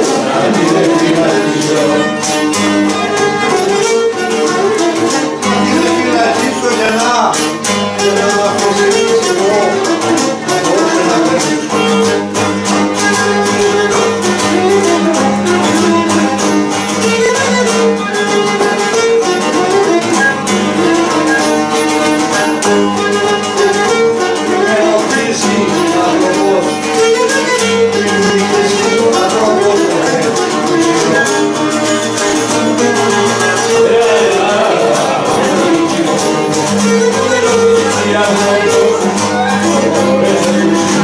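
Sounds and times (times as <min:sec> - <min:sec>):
bowed string melody: 0:00.0 - 0:41.0
strummed plucked strings: 0:00.0 - 0:41.0.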